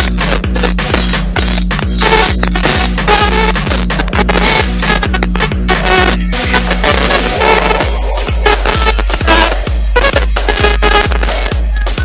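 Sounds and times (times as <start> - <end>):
dense music with kick drum: 0.0 - 12.0.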